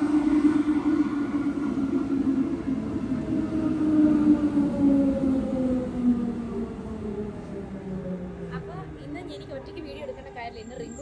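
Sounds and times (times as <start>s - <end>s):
electric train motor whine: 0.0s - 8.6s
rumble of train wheels: 0.0s - 11.0s.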